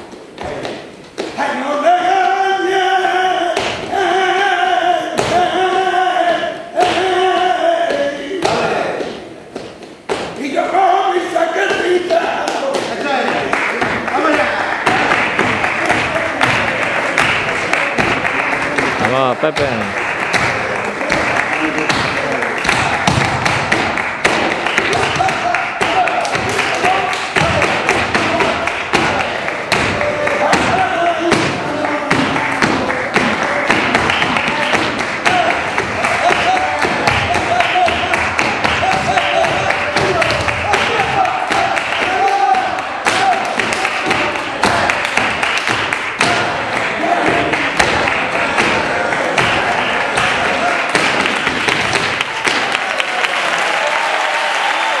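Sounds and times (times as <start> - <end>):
men clapping in rhythm: 11.3 - 55.0
audience applauding: 12.5 - 55.0
foot stamps on stage boards: 20.3 - 52.7.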